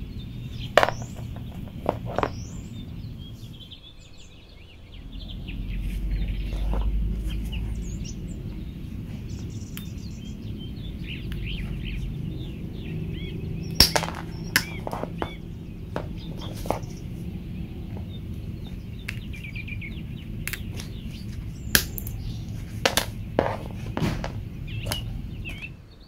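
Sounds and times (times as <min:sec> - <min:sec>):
low rumble: 0:00.0 - 0:26.0
small birds chirping: 0:00.0 - 0:26.0
pliers snapping through cable: 0:20.5 - 0:20.9.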